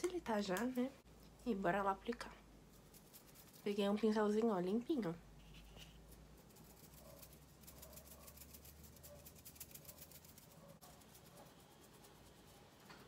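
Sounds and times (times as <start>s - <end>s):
makeup brush strokes: 1.8s - 13.0s.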